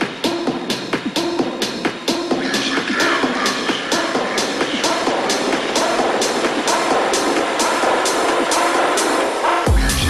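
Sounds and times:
synth chords: 0:00.0 - 0:10.0.

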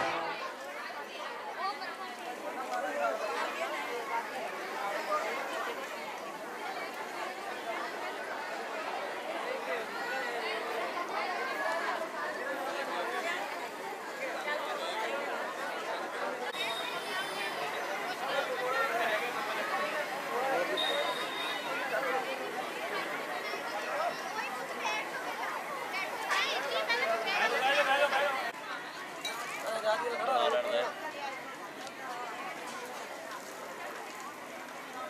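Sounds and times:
crowd chatter: 0:00.0 - 0:35.0.

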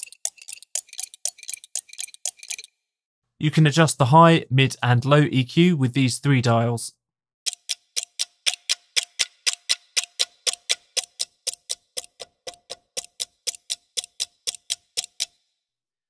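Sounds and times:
pocket watch ticking: 0:00.0 - 0:02.7, 0:07.5 - 0:15.4.

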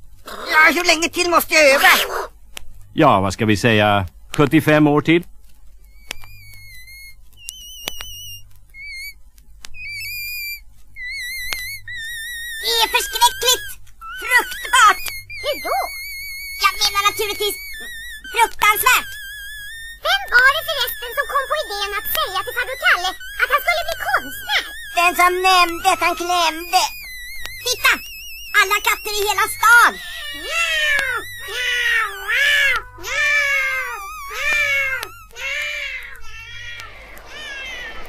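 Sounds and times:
cats caterwauling: 0:05.9 - 0:38.0.

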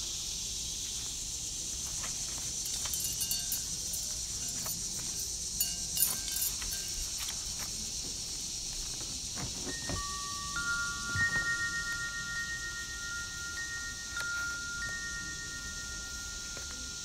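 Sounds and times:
steady high hiss: 0:00.0 - 0:17.0
ringing chime tones: 0:02.7 - 0:07.2, 0:09.8 - 0:17.0.

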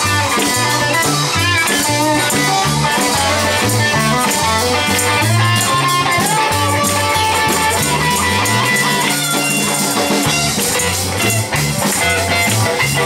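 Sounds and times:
bass line: 0:00.0 - 0:13.0
drums: 0:00.0 - 0:13.0
electric guitar: 0:00.0 - 0:13.0.

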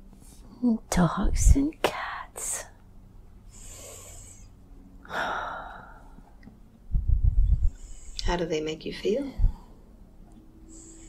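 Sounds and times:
low muffled rumbling bumps: 0:06.9 - 0:07.8.

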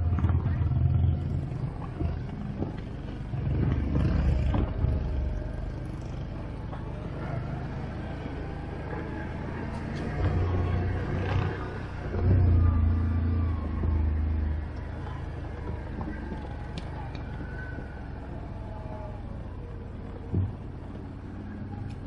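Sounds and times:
quad bike engine running: 0:00.0 - 0:12.8.

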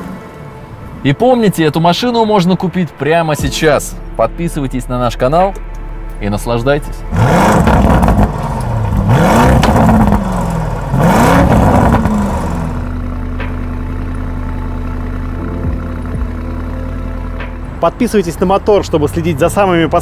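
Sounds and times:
car engine revving and idling: 0:05.6 - 0:20.0.

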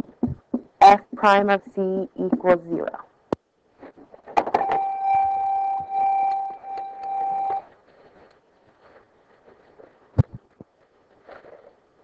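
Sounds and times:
high-pitched tone: 0:04.6 - 0:07.7.

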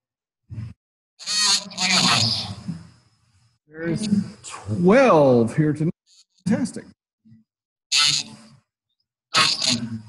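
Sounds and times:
person speaking over video call: 0:03.7 - 0:07.0.

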